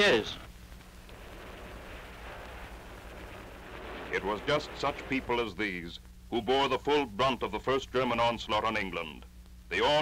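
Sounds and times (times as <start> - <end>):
film soundtrack hiss: 0.0 - 10.0
low hum: 0.4 - 9.7.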